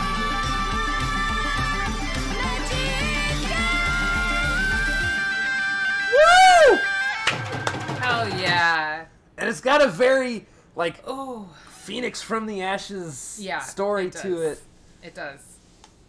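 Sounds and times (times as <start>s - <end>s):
dhol drum beat: 7.3s - 8.7s.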